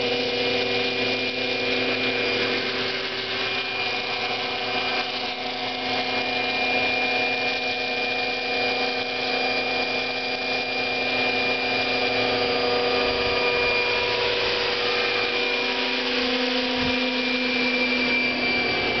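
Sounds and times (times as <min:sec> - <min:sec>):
model helicopter rotor whine: 0:00.0 - 0:19.0.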